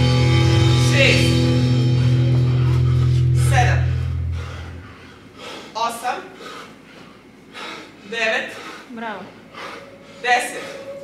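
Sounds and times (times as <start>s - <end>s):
rock music with heavy bass: 0.0s - 3.7s.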